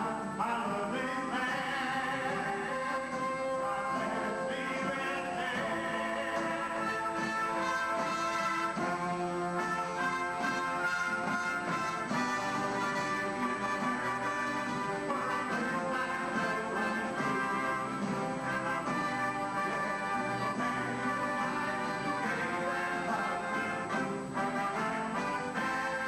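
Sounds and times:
military concert band playing: 0.0 - 26.0.

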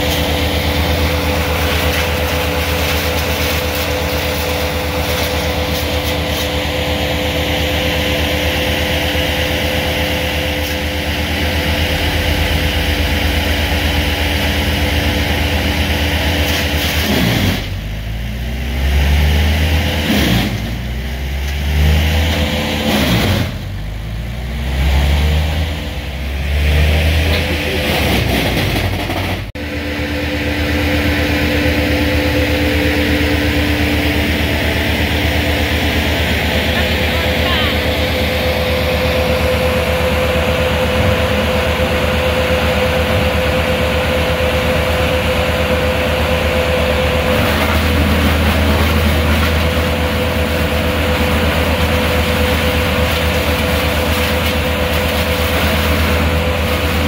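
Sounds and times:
diesel truck engine revving: 0.0 - 57.0.

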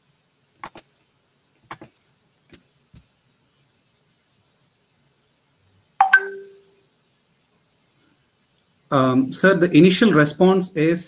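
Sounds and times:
short ding: 6.0 - 6.7.

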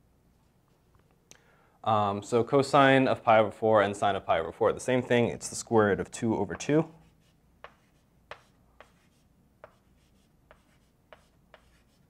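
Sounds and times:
chalk tapping on blackboard: 7.0 - 12.0.

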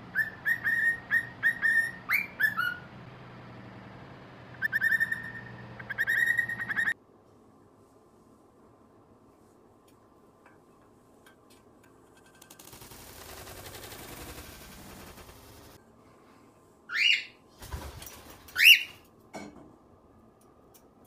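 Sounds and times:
loud rising cockatiel calls: 0.1 - 2.9, 4.5 - 7.0, 18.6 - 19.0
bird wings flapping: 12.1 - 15.8, 17.6 - 19.0.

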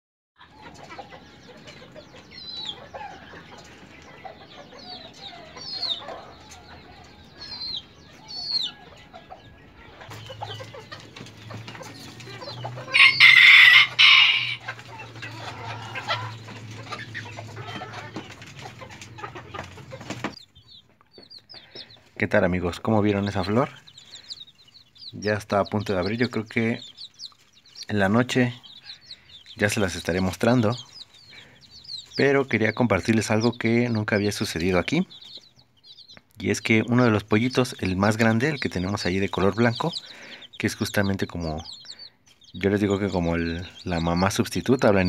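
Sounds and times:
chickens clucking: 0.4 - 45.0
rooster crowing: 12.8 - 16.4.

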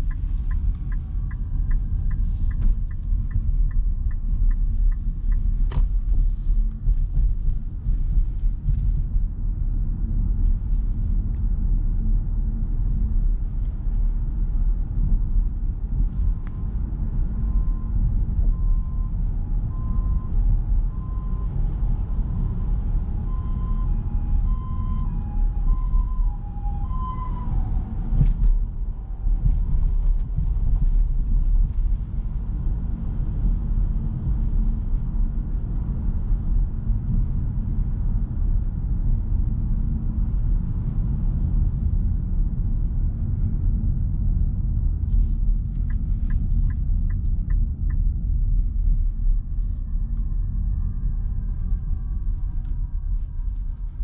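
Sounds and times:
road rumble inside car cabin: 0.0 - 54.0
two-tone emergency siren: 22.2 - 28.4.

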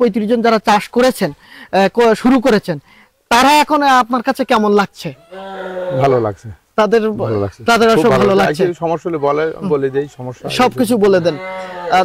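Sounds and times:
man talking: 5.9 - 12.0.

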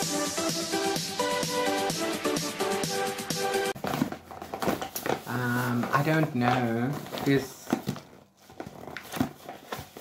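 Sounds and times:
plastic bag rustling and crinkling: 3.8 - 10.0.

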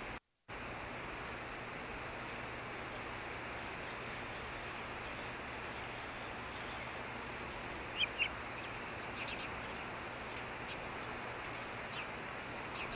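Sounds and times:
background hiss: 0.0 - 12.9
bird high chirps: 7.9 - 10.8.

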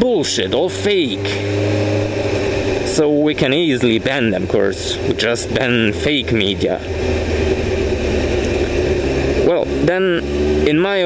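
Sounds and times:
motorcycle engine rumble: 0.0 - 11.0
wind and road noise: 0.0 - 11.0.

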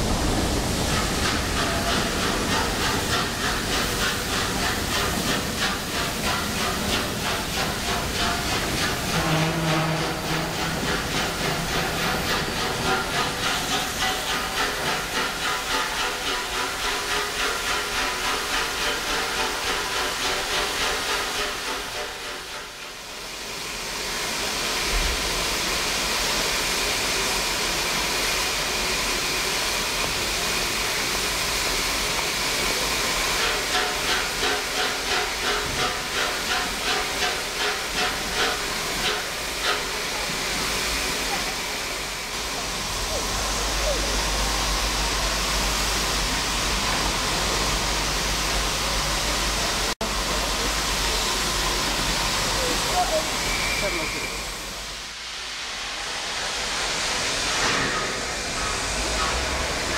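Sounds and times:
steam locomotive hissing steam: 0.0 - 59.9.

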